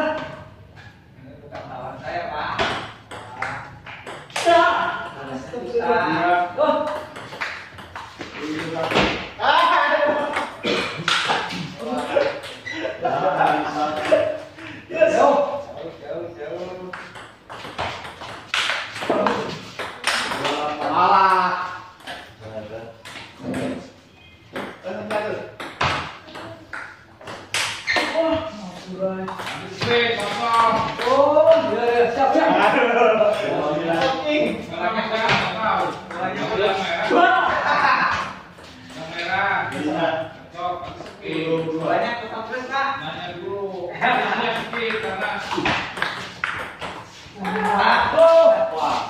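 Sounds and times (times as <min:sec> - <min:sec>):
men talking and calling out: 0:27.9 - 0:46.0, 0:47.0 - 0:49.0.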